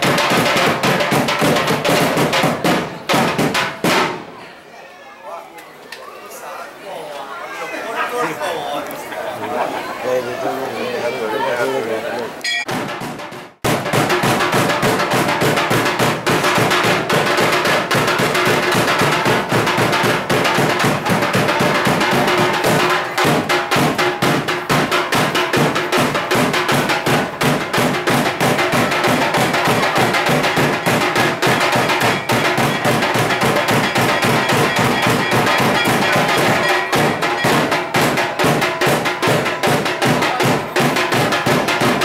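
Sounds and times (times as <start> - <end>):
fast percussion drumming: 0.0 - 4.1, 12.5 - 42.0
ringing tone: 12.4 - 12.7.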